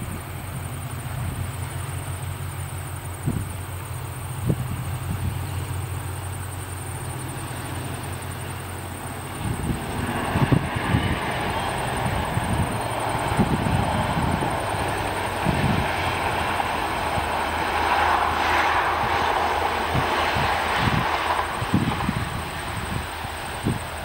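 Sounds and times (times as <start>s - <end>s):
distant train passing: 0.0s - 24.0s
wind buffeting microphone: 0.0s - 24.0s.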